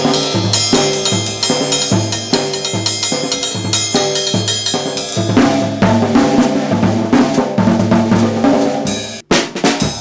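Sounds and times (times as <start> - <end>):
ringing cymbal strikes: 0.0 - 5.8
low drum notes: 0.0 - 10.0.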